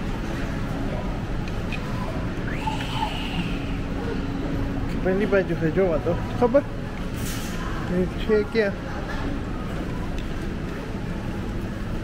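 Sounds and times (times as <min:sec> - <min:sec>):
faint indistinct background sounds: 0:00.0 - 0:12.0.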